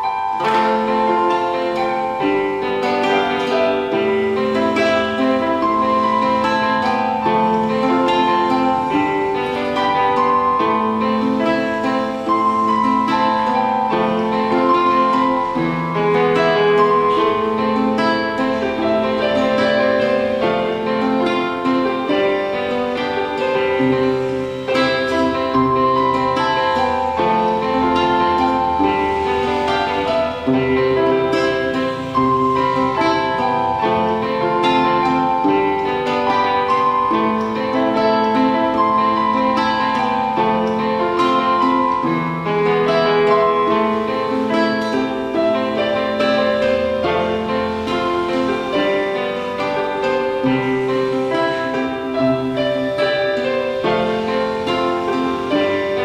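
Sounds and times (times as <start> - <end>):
acoustic guitar chords: 0.0 - 56.0
keyboard piano melody: 0.0 - 56.0.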